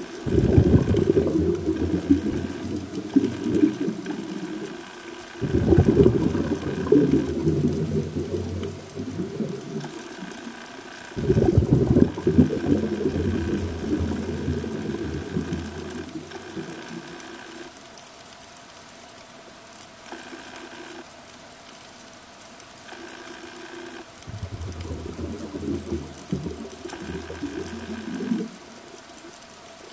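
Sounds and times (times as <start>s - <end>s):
regulator exhale bubbling: 0.2s - 10.2s, 11.2s - 17.1s, 24.3s - 28.8s.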